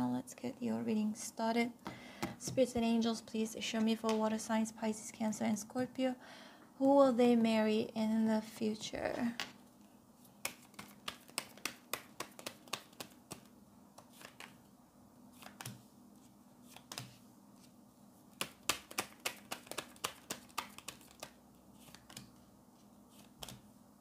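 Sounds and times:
faint steady hum: 0.0 - 24.0
cards clicking on wooden table: 10.4 - 14.6, 15.4 - 15.8, 16.7 - 17.2, 18.4 - 22.4, 23.2 - 23.6.

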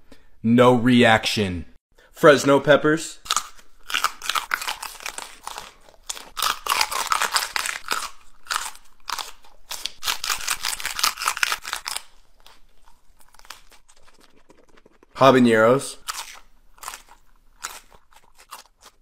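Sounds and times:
person chewing crunchy peppers: 3.2 - 19.0.

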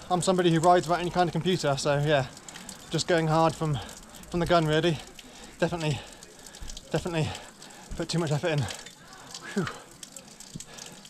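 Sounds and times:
fountain water trickling: 0.0 - 11.0.

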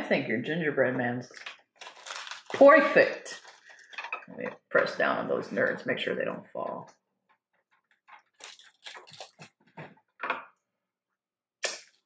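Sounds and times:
candy clicking and crackling: 1.3 - 4.2, 8.1 - 9.6.

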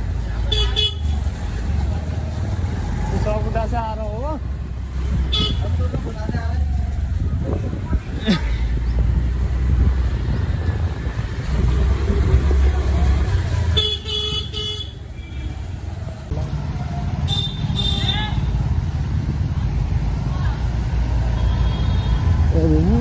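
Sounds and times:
motor scooter rumbling: 0.0 - 23.0
vehicle horns honking: 0.5 - 1.2, 5.3 - 5.8, 13.8 - 15.6, 17.3 - 18.5, 21.4 - 22.3.

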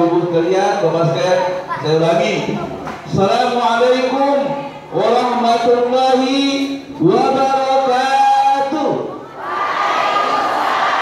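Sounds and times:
men's voices of congregation: 0.0 - 9.2.

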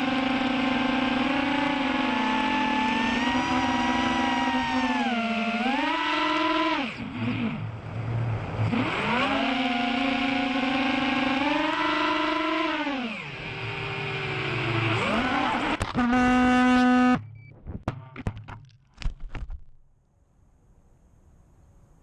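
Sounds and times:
drone motors whining: 0.0 - 17.3.

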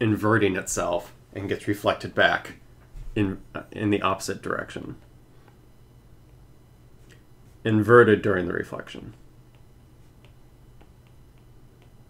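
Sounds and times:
steady low hum: 0.0 - 12.0
stylus ticking on tablet screen: 9.4 - 12.0.

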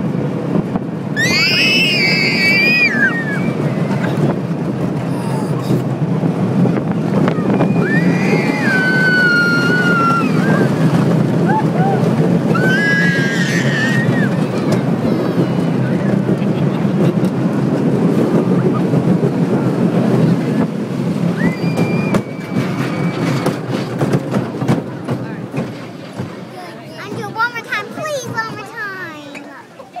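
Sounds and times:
roller coaster on track: 0.0 - 30.0
people's voices: 6.7 - 30.0.

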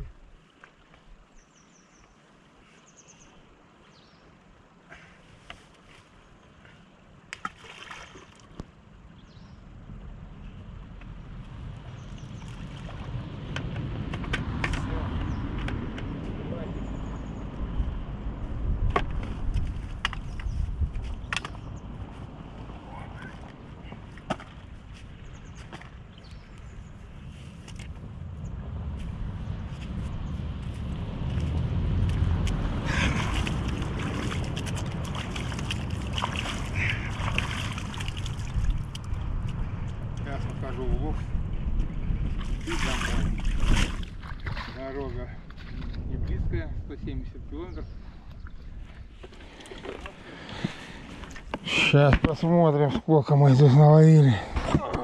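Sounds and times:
wind buffeting microphone: 9.2 - 52.8.

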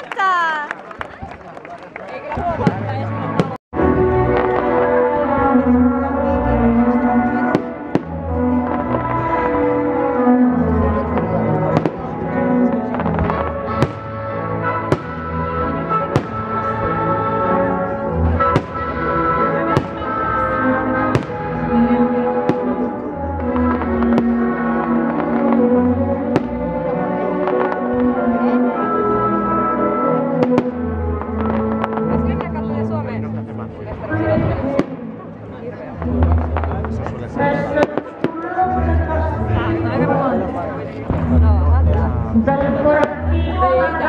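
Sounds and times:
fireworks bangs: 12.8 - 16.9, 18.3 - 25.7.

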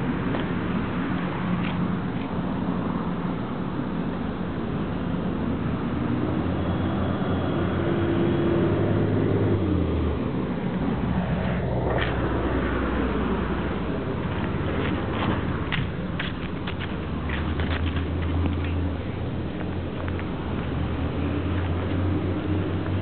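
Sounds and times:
traffic rumble: 0.0 - 23.0
vehicle engine passing: 16.9 - 23.0.

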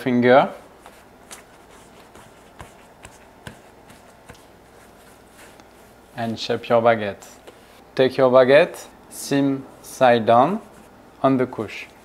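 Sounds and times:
dough rolling soft shuffling: 0.7 - 7.8, 9.5 - 12.0.

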